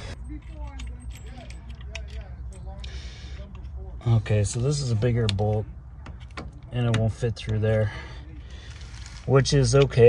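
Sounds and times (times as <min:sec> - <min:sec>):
metal hardware clicking and rattling: 0:00.0 - 0:03.8.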